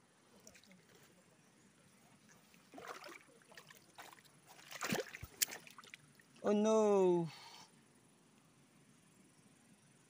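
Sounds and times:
faint water splashes: 0.2 - 6.6
water sloshing by hand: 2.2 - 6.4.

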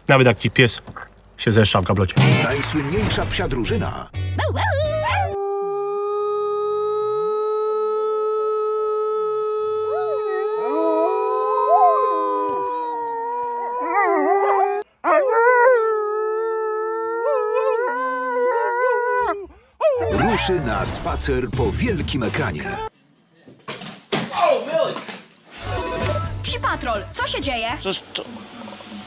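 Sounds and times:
woman howling: 4.4 - 20.3
wolves howling in chorus: 9.7 - 16.0, 16.6 - 20.6.

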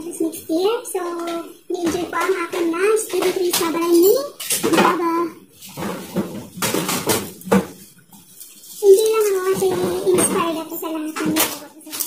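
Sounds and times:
dishes and utensils clinking: 1.2 - 12.0.

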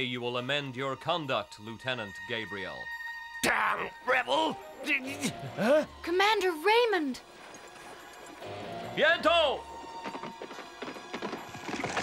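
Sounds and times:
background music: 0.0 - 12.0
horse hooves clip-clopping: 7.3 - 12.0.

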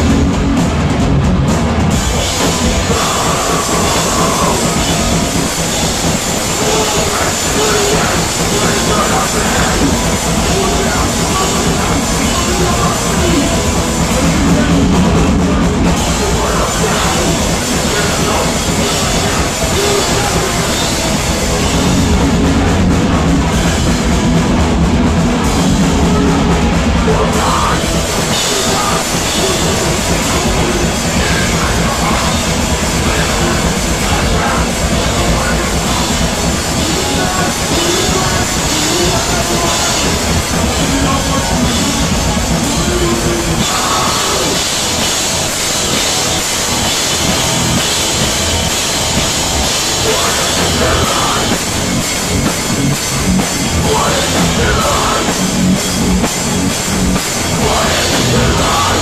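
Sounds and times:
crowd noise: 0.0 - 59.0
distorted guitar noise: 0.0 - 59.0
drums: 0.0 - 59.0.

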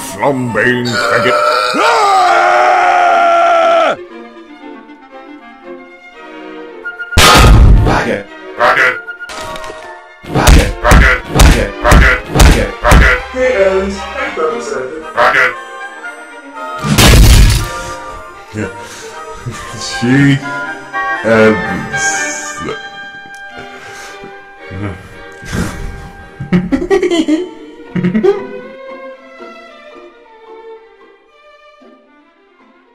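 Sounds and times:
background music: 0.0 - 32.9
loud long scream: 1.0 - 4.0
heavy impact crash: 7.2 - 8.0, 16.8 - 18.0.

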